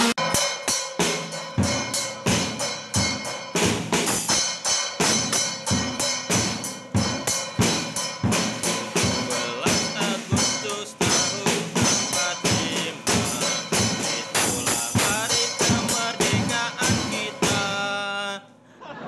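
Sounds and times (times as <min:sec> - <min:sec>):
drum and cymbal strikes: 0:00.0 - 0:18.4
recorded backing music: 0:00.0 - 0:18.5.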